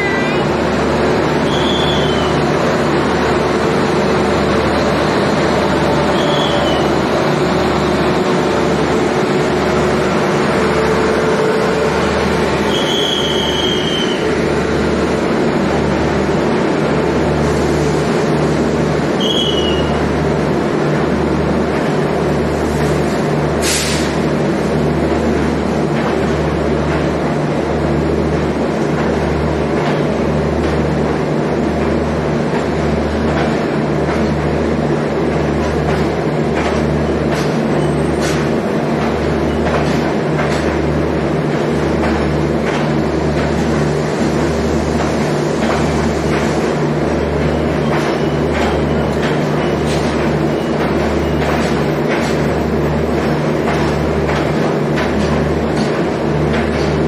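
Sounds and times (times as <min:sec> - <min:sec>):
train wheels rumbling on rail: 0:00.0 - 0:57.0
high-pitched wheel squeals: 0:12.7 - 0:14.3.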